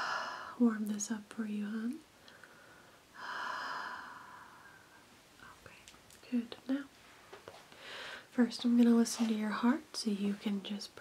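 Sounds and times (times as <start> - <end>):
breathy exhale: 7.8 - 8.3.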